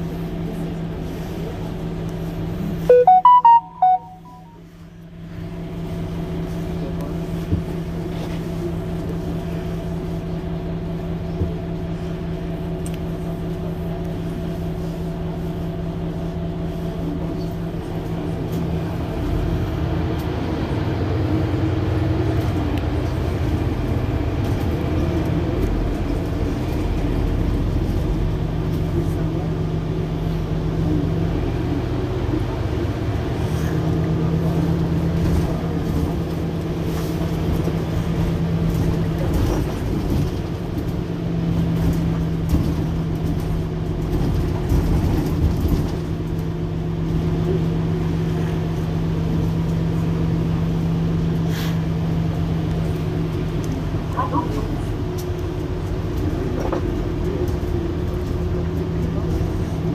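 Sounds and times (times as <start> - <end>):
bus engine idling: 0.0 - 59.9.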